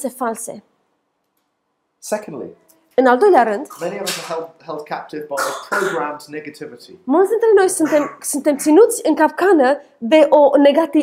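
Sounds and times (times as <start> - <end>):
person preaching: 3.0 - 6.4, 7.6 - 8.9.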